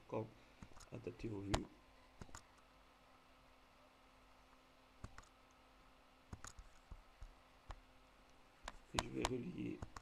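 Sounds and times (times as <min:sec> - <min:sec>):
faint steady hum: 0:00.0 - 0:10.0
computer mouse clicking: 0:00.6 - 0:02.6, 0:05.0 - 0:05.4, 0:06.3 - 0:10.0.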